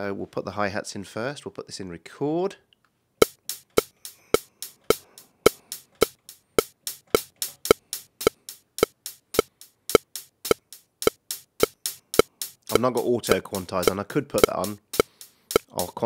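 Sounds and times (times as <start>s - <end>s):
click track: 3.2s - 16.0s
hi-hat samples tapped by hand: 3.2s - 16.0s.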